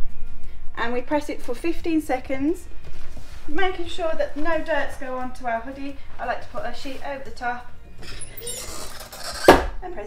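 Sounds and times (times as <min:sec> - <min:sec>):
rustle of cover sheet: 0:02.8 - 0:04.6.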